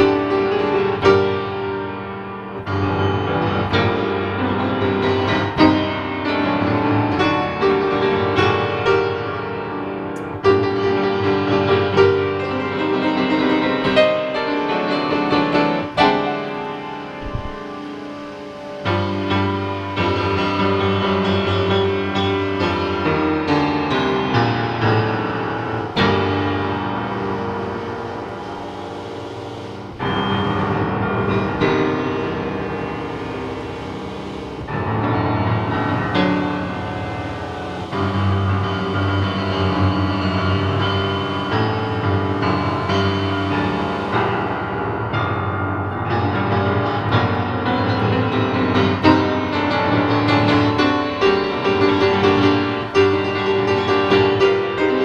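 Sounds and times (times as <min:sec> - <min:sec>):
piano chords ringing: 0:00.0 - 0:55.0.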